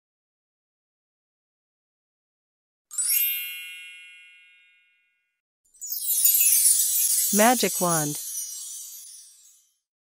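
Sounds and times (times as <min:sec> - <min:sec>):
shimmering sparkle effect: 0:05.8 - 0:09.9.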